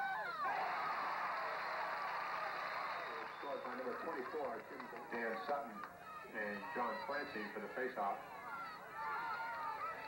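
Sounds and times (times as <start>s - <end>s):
spectators cheering and shouting: 0.0s - 10.0s.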